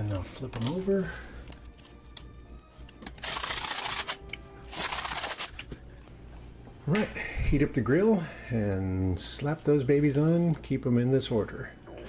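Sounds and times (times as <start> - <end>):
pepper grinder rasping: 3.1 - 5.6.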